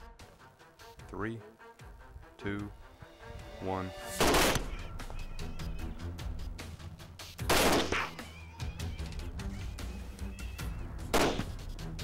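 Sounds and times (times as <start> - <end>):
background music: 0.0 - 12.0
rifle shot: 4.2 - 4.7, 7.4 - 8.2, 11.1 - 11.6.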